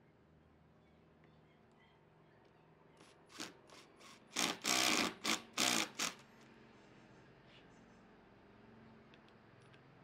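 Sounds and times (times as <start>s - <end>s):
impact driver driving screw: 3.3s - 6.2s.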